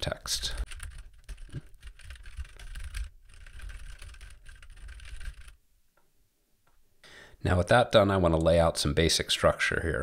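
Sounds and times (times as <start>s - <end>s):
typing on keyboard: 0.6s - 5.6s.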